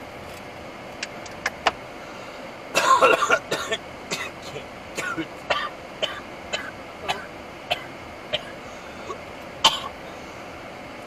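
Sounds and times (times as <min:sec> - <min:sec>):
person coughing: 0:02.8 - 0:10.0.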